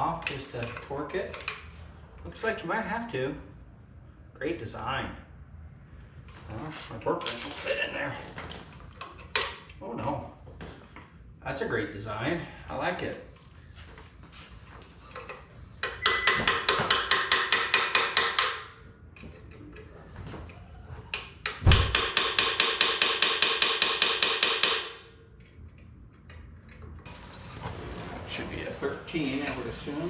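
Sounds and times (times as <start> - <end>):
thump: 21.6 - 22.0.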